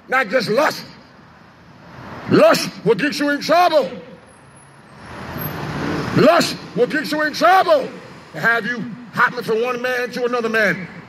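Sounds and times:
vehicle passing: 0:04.1 - 0:09.2.

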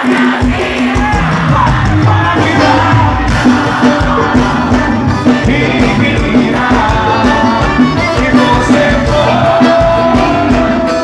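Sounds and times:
crowd noise: 0:00.0 - 0:11.0
live band music: 0:00.0 - 0:11.0
person singing: 0:00.4 - 0:11.0.

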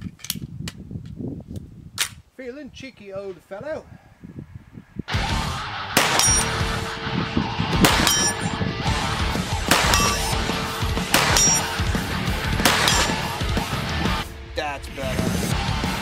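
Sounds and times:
rock music: 0:05.1 - 0:16.0
pistol shots: 0:06.0 - 0:06.6, 0:07.8 - 0:08.4, 0:09.6 - 0:10.4, 0:11.0 - 0:11.8, 0:12.6 - 0:13.4.

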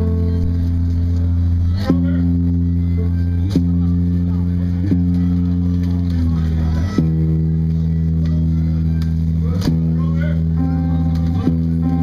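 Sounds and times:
band playing sustained chords: 0:00.0 - 0:12.0
low bass note: 0:00.0 - 0:12.0.

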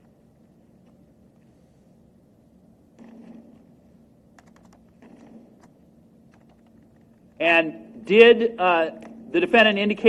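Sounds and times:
computer keyboard typing: 0:04.4 - 0:05.7, 0:06.3 - 0:06.8.

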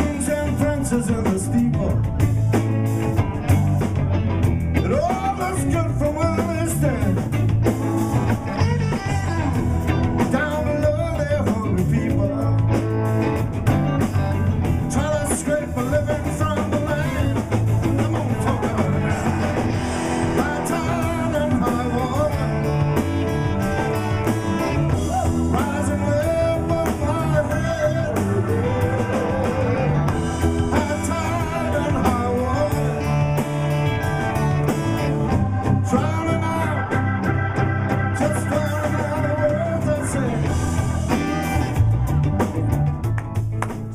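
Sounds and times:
bending electric guitar lead: 0:00.0 - 0:43.9
blues-rock band playing: 0:00.0 - 0:43.9.

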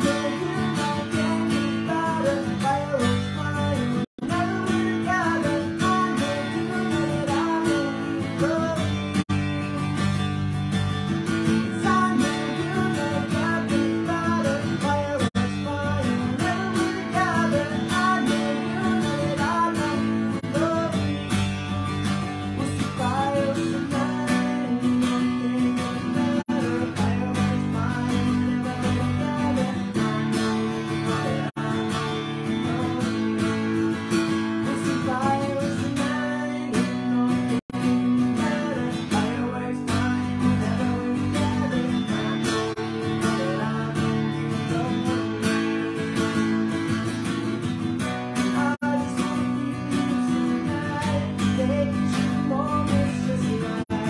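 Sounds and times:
man singing: 0:00.0 - 0:54.0
strummed acoustic guitar: 0:00.0 - 0:54.0.

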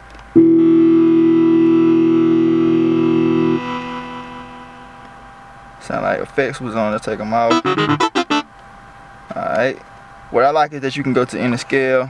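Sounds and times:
held synthesizer note: 0:00.7 - 0:05.0, 0:07.5 - 0:08.5.

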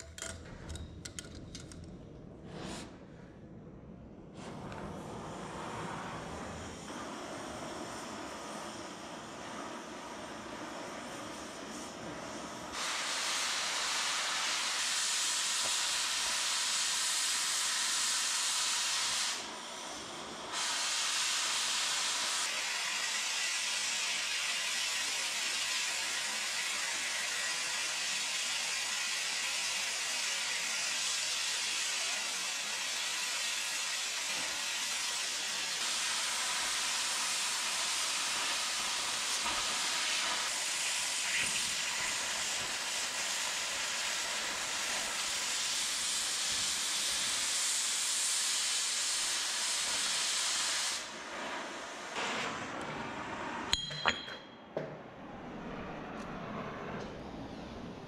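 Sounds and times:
cutting torch hissing: 0:04.4 - 0:53.5.

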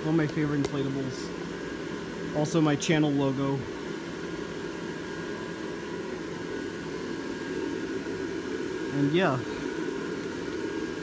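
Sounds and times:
blower fan whirring: 0:00.0 - 0:11.0.

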